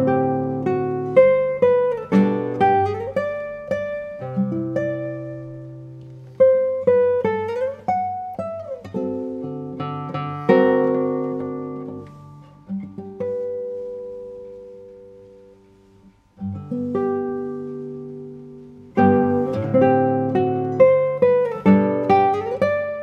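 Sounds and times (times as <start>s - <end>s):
classical guitar: 0.0s - 23.0s.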